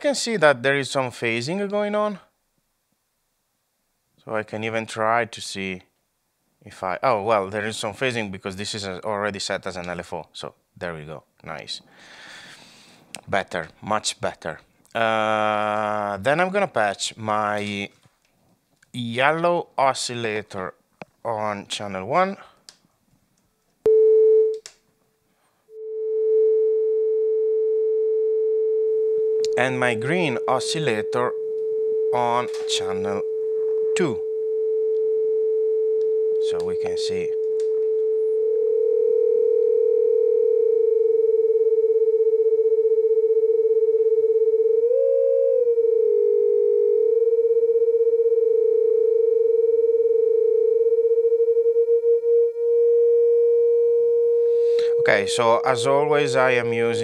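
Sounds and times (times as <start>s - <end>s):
oscillator steady tone: 25.7s - 32.3s, 33.2s - 56.5s
oscillators beating sustained tone: 44.8s - 56.4s.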